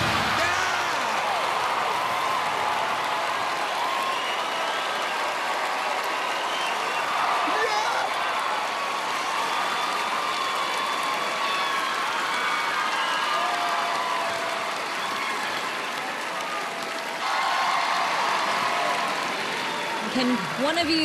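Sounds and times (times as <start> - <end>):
audience applauding and cheering: 0.0 - 21.0.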